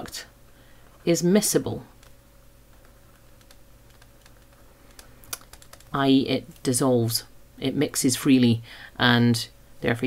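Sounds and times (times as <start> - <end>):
faint steady hum: 0.0 - 10.0
stylus tapping touchscreen: 2.7 - 5.9.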